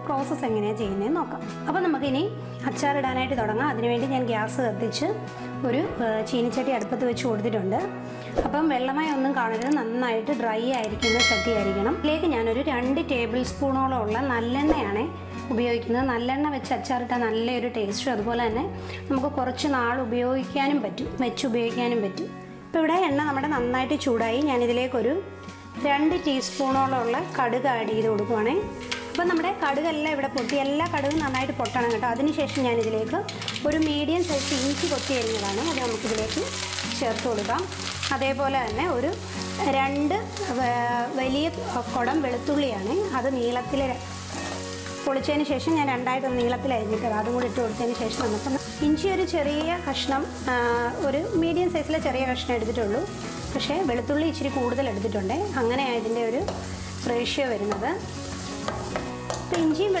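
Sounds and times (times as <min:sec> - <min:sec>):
background music: 0:00.0 - 1:00.0
woman speaking: 0:08.5 - 0:25.1, 0:25.8 - 0:44.0, 0:45.1 - 0:56.5, 0:59.5 - 1:00.0
garlic sizzling in oil: 0:26.3 - 1:00.0
steel spoon stirring in pan: 0:43.5 - 0:45.1, 0:54.5 - 0:59.6.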